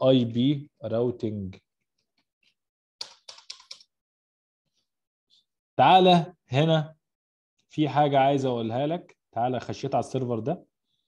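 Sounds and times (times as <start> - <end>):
computer keyboard typing: 3.0 - 3.9.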